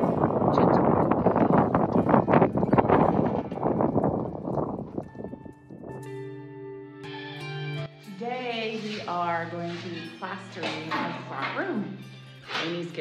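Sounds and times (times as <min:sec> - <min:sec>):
gusty wind on microphone: 0:00.0 - 0:06.1
soft music: 0:00.0 - 0:13.0.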